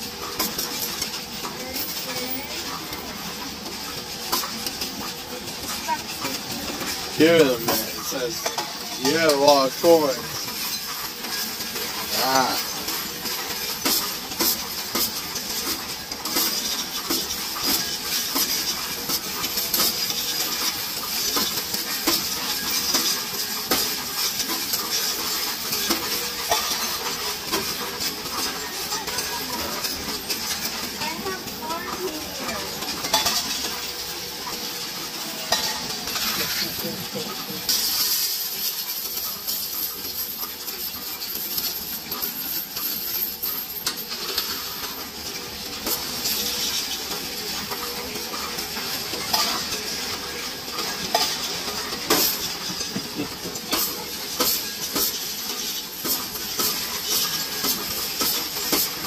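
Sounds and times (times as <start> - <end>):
coins clinking in a machine: 0.0 - 59.0.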